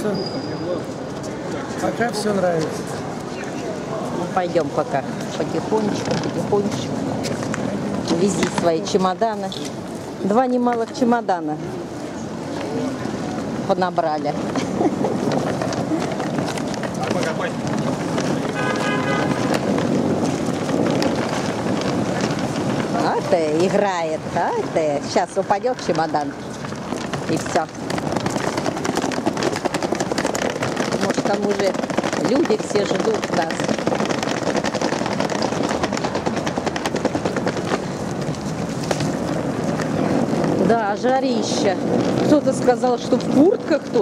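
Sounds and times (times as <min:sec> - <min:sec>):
suitcase wheels rumbling on paving: 0:00.0 - 0:44.0
footsteps: 0:00.8 - 0:11.4, 0:12.4 - 0:44.0
wheels clicking over slab joints: 0:01.8 - 0:11.4, 0:12.4 - 0:44.0.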